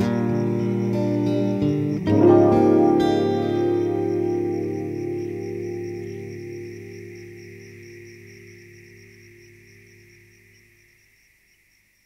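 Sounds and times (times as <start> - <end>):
acoustic guitar chord ringing: 0.0 - 9.8.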